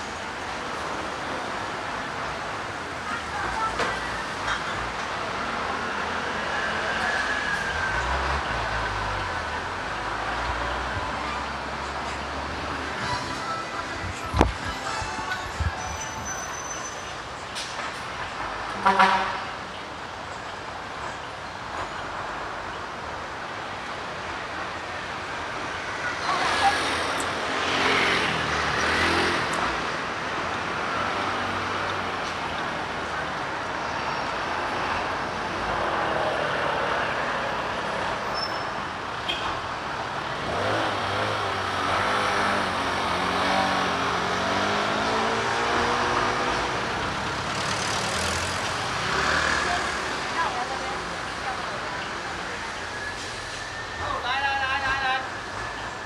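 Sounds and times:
cars and scooters passing: 0:00.0 - 0:56.0
continuous road noise: 0:00.0 - 0:56.0.

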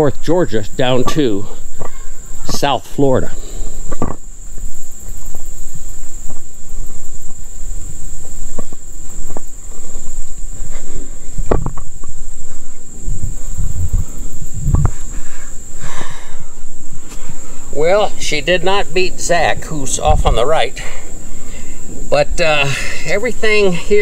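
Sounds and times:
footsteps on forest floor: 0:00.0 - 0:15.9, 0:16.5 - 0:18.2
insects droning: 0:00.0 - 0:24.0
loud thumps: 0:11.4 - 0:12.2, 0:13.2 - 0:15.2.

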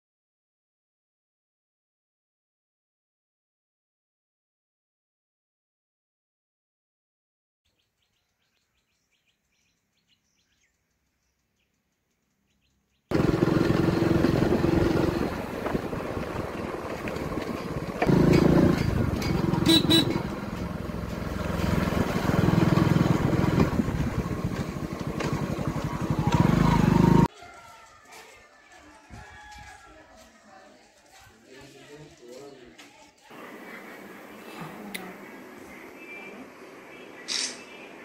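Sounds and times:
motorcycle engine running: 0:13.1 - 0:27.3.

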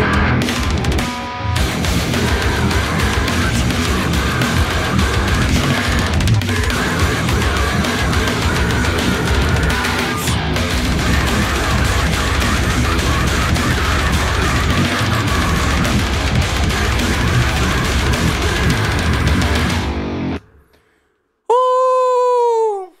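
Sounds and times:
electric guitar metal riff: 0:00.0 - 0:20.7
held guitar tone sagging in pitch: 0:00.0 - 0:20.7.

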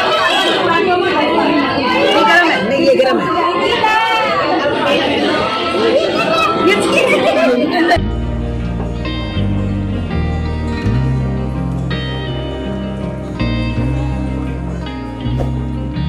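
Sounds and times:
crowd chattering in hall: 0:00.0 - 0:16.0.

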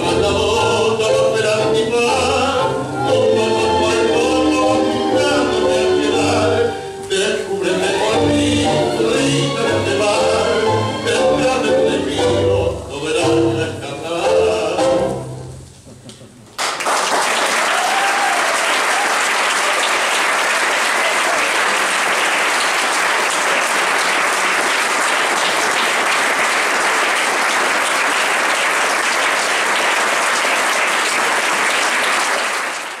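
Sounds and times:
sung tango: 0:00.0 - 0:16.5
audience applause: 0:16.6 - 0:33.0.

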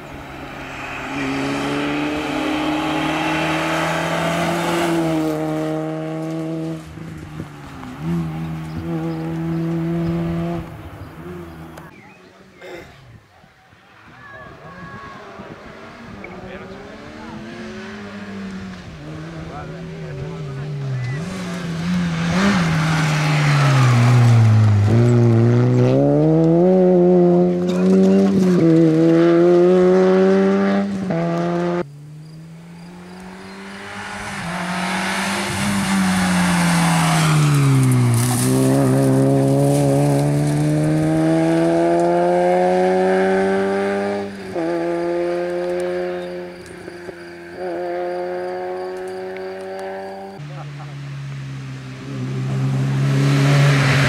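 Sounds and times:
rally car engine revving: 0:00.0 - 0:12.1, 0:15.2 - 0:54.0.

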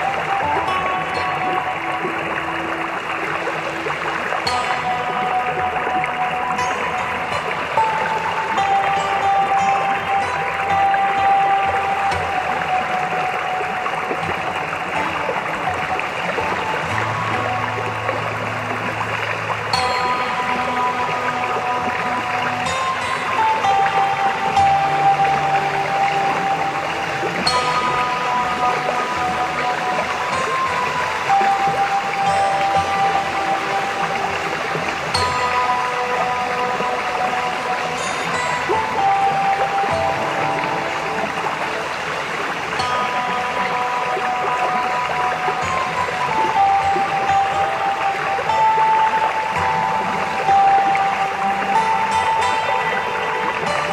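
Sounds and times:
flowing water rushing: 0:00.0 - 0:53.9
slow instrumental music: 0:00.0 - 0:53.9.

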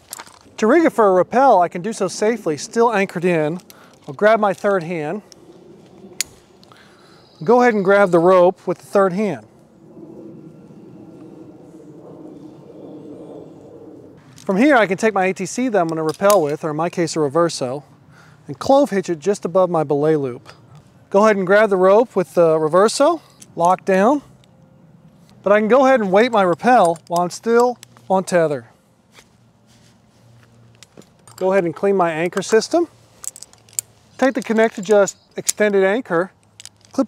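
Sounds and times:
faint rustling of climbing gear: 0:00.0 - 0:00.6, 0:02.0 - 0:07.6, 0:23.0 - 0:37.0
dove cooing faintly: 0:09.8 - 0:14.2.

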